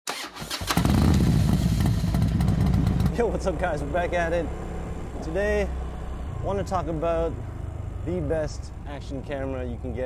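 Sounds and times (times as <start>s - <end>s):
scooter engine running: 0.4s - 8.1s.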